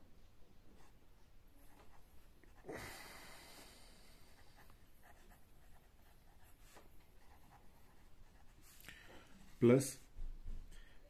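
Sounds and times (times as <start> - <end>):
pen scratching on paper: 4.3 - 8.8.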